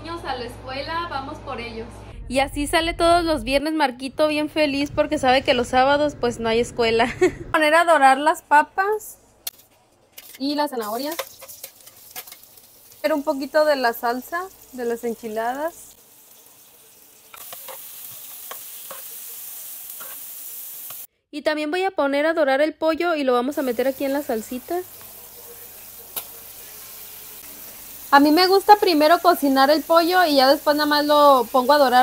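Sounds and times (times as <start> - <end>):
food sizzling on griddle: 10.7 - 21.1, 23.5 - 32.0
vegetables clicking onto griddle: 26.1 - 26.4.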